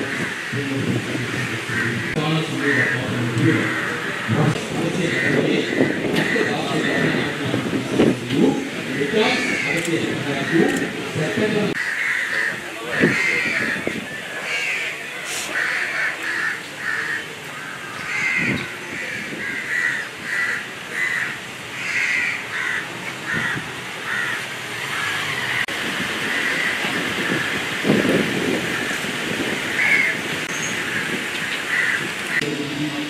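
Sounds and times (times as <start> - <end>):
birds calling: 0.0 - 32.5.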